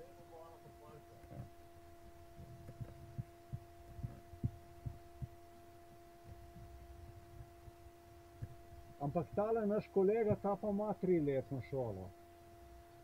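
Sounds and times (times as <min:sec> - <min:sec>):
faint steady hum: 0:00.0 - 0:13.0
soft low knocks: 0:01.2 - 0:10.8.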